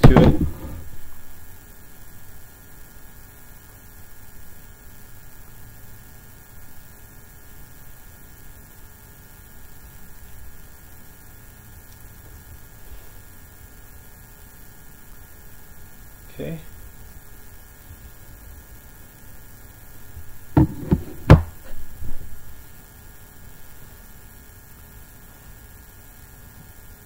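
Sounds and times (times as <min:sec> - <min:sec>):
faint hiss: 0:00.0 - 0:27.0
low electrical hum: 0:00.0 - 0:27.0.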